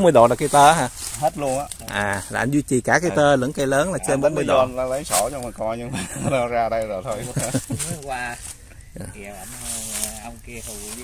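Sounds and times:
faint high hiss: 0:00.0 - 0:11.0
men talking: 0:00.0 - 0:11.0.

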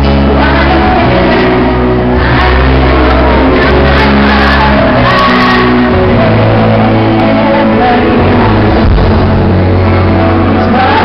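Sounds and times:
steady bass: 0:00.0 - 0:11.0
woman singing: 0:00.0 - 0:11.0.

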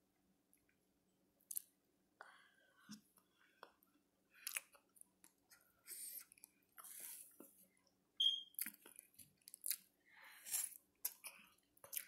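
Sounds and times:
person chewing food: 0:01.5 - 0:01.7, 0:02.8 - 0:07.5, 0:08.5 - 0:12.0.

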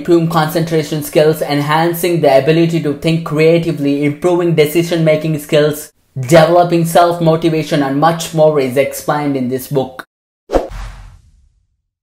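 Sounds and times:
whoosh with low thump: 0:10.5 - 0:11.9.

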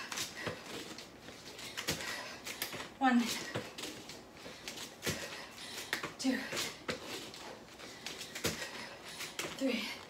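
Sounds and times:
hard fast breathing: 0:00.0 - 0:10.0.

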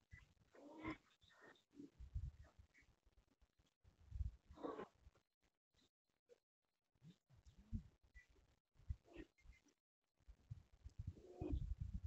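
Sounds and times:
faint animal call: 0:00.1 - 0:02.0, 0:04.5 - 0:05.0, 0:09.0 - 0:09.6, 0:11.1 - 0:11.7.

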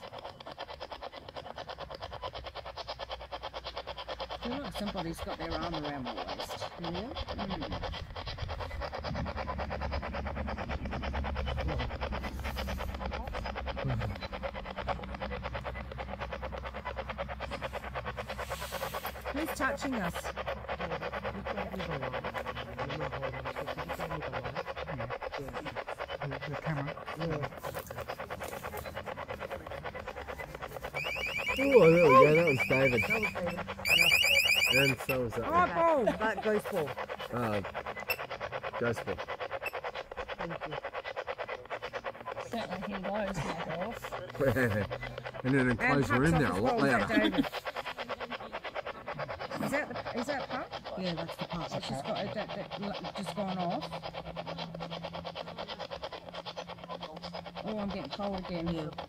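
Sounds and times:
voices reacting: 0:04.3 - 0:59.0.

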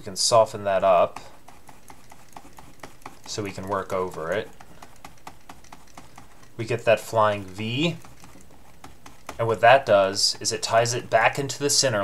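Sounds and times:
stylus clicks and taps: 0:01.1 - 0:06.6, 0:07.3 - 0:09.6.

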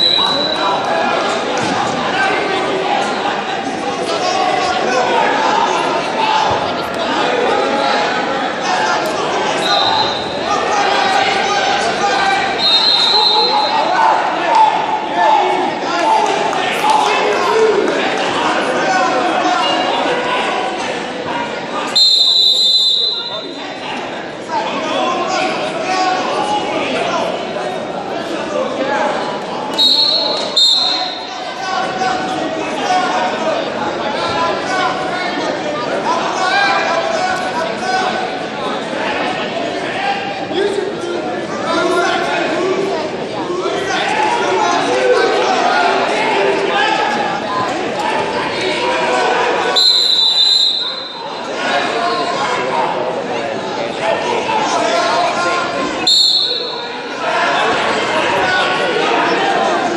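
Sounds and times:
referee's whistle blasts: 0:00.0 - 0:00.6, 0:09.6 - 0:10.4, 0:12.6 - 0:13.9, 0:21.9 - 0:23.6, 0:29.7 - 0:31.3, 0:49.7 - 0:51.4, 0:56.0 - 0:56.9
crowd chatter: 0:00.0 - 0:59.9.

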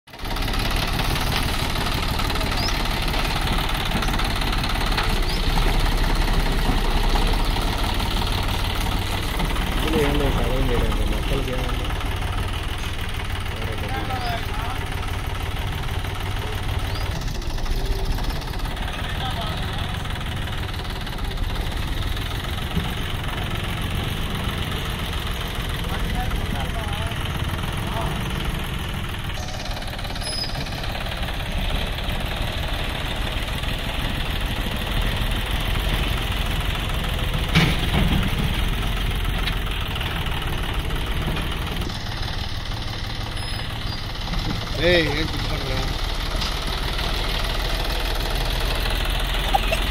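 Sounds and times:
diesel tractor engine running: 0:00.1 - 0:49.9.

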